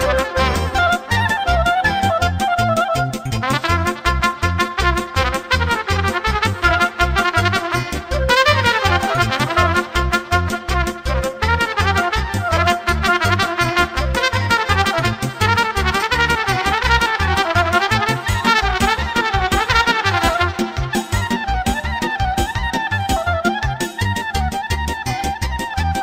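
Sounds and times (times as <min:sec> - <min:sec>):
backing band driving beat: 0:00.0 - 0:26.0
trumpet playing fast melody: 0:00.0 - 0:26.0.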